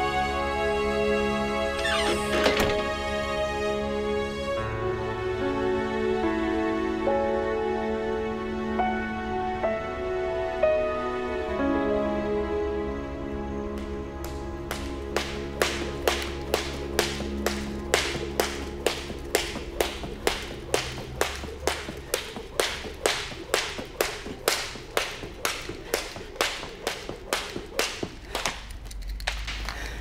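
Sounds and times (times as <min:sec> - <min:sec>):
film score music: 0:00.0 - 0:22.4
sharp slaps: 0:13.8 - 0:29.8.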